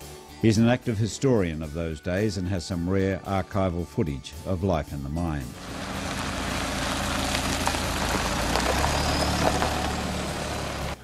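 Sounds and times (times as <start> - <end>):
gravel clicks: 5.6 - 11.0
low engine hum: 5.6 - 11.0
tyre noise on dirt track: 5.6 - 11.0.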